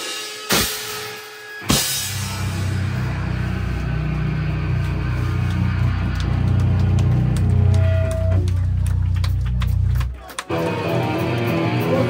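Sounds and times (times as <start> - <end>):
electric guitar and bass chord: 2.0 - 9.9, 10.5 - 12.0.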